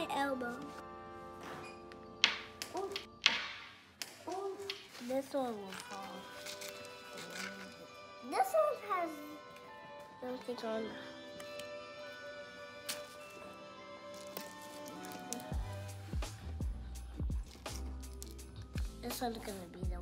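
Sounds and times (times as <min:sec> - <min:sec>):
deep bass and steady beat: 0:15.6 - 0:18.0, 0:18.8 - 0:19.2.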